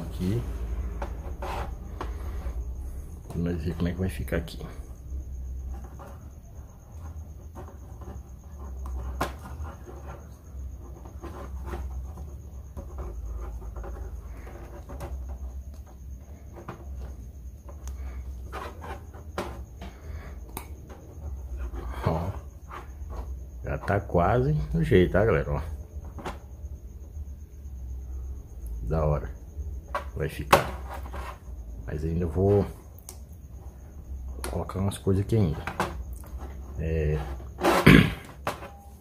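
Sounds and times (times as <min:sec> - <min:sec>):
low steady hum: 0:00.0 - 0:39.0.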